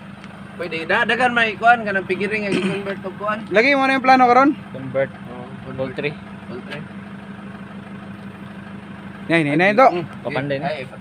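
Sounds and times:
van engine idling: 0.0s - 11.0s.

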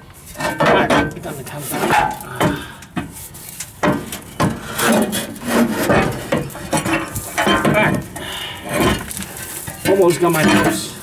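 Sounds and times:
scraping and rubbing: 0.1s - 11.0s.

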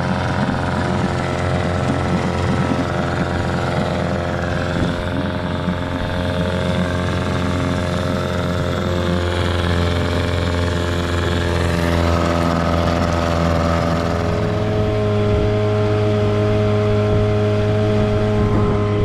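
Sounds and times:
outboard motor running: 0.0s - 19.0s.

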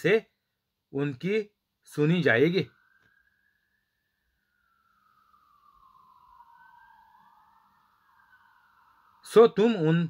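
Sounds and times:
faint siren wailing: 0.0s - 10.0s.

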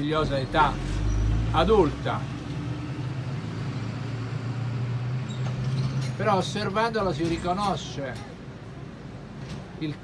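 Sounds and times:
faint street traffic: 0.0s - 10.0s.

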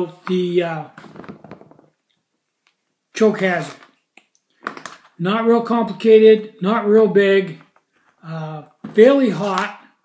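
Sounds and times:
person speaking: 0.0s - 1.4s, 3.1s - 4.1s, 5.0s - 10.0s.

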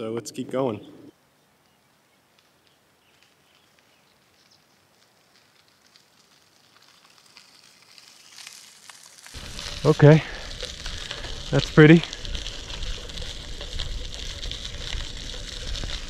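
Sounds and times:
bicycle tyres crunching on gravel: 2.4s - 16.0s.

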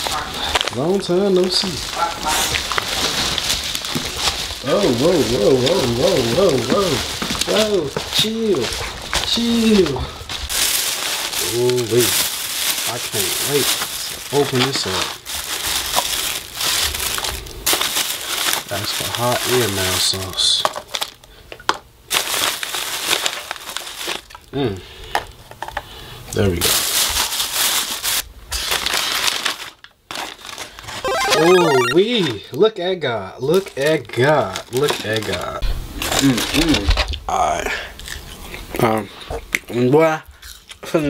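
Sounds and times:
scuffling and rustling: 1.3s - 19.8s.

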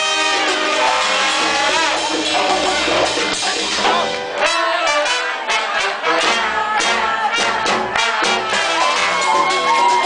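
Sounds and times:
congas and drum kit: 0.0s - 10.0s
horns holding notes: 0.0s - 10.0s
salsa band playing live: 0.0s - 10.0s.

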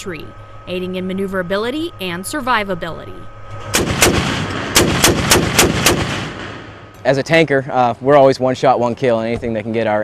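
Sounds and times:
gunfire echo: 3.6s - 6.9s
automatic cannon firing: 3.7s - 6.9s.

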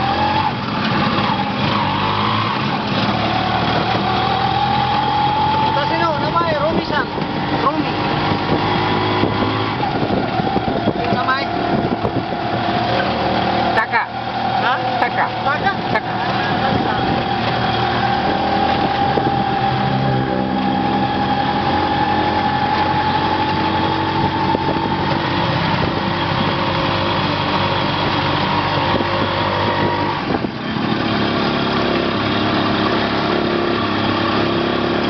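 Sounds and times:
small motorcycle engine running: 0.0s - 35.0s.

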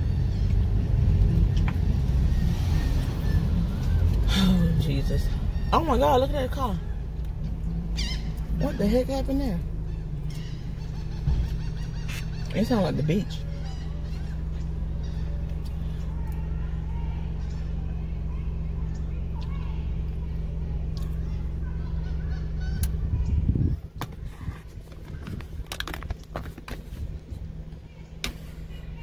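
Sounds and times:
car cabin engine hum: 0.0s - 29.0s
low rumble: 0.0s - 29.0s.

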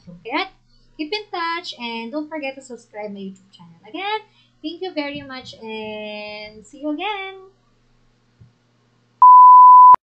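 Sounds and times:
loud electronic beep: 9.2s - 10.0s.

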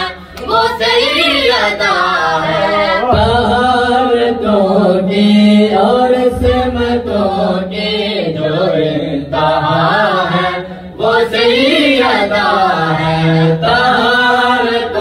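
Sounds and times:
men and children chanting: 0.0s - 15.0s.

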